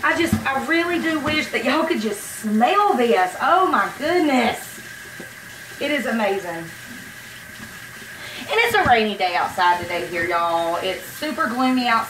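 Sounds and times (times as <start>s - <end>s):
woman speaking: 0.0s - 4.8s, 5.8s - 6.8s, 8.4s - 12.0s
tap water running into metal pot: 0.0s - 12.0s.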